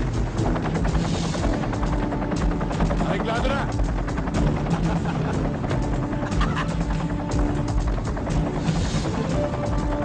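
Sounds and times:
film music with low bed: 0:00.0 - 0:10.0.

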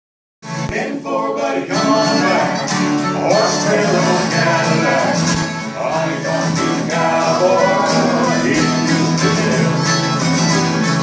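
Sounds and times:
strummed acoustic guitars: 0:00.4 - 0:11.0
person singing: 0:00.7 - 0:11.0
harmonica: 0:01.7 - 0:11.0.

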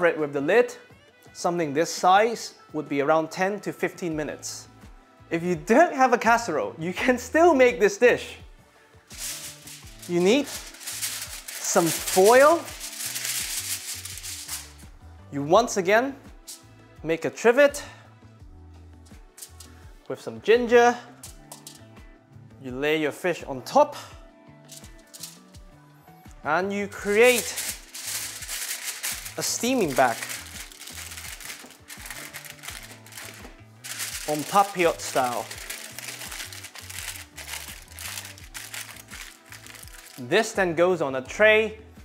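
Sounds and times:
background music with bass: 0:06.4 - 0:22.8, 0:23.4 - 0:42.0
aluminium foil crinkling: 0:09.1 - 0:14.8, 0:19.4 - 0:19.8, 0:21.2 - 0:21.8, 0:24.7 - 0:25.6, 0:27.0 - 0:40.3.

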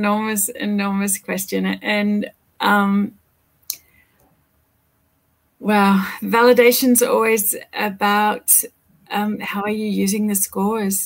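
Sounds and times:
person speaking: 0:00.0 - 0:03.1.

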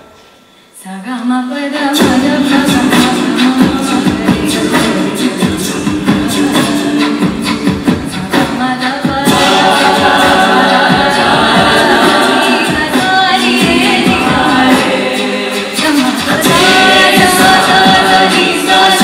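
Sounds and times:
female lead singer: 0:00.8 - 0:19.0
backing voices singing: 0:01.5 - 0:19.0.

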